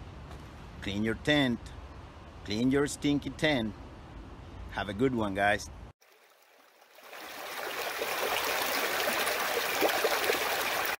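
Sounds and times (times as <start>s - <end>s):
stream running over stones: 6.0s - 11.0s.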